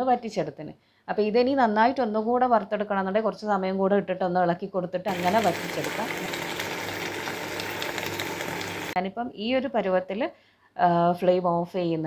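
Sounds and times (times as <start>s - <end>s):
food sizzling in a pan: 5.1s - 9.0s
person speaking: 5.1s - 9.2s.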